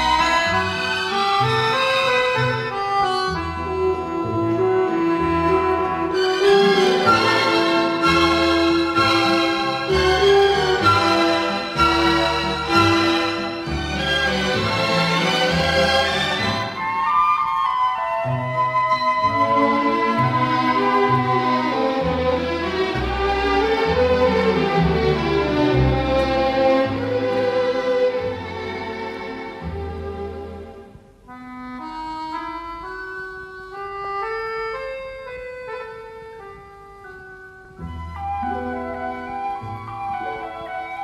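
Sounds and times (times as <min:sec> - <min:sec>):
orchestral instrumental music: 0:00.0 - 0:34.0, 0:36.9 - 0:41.0.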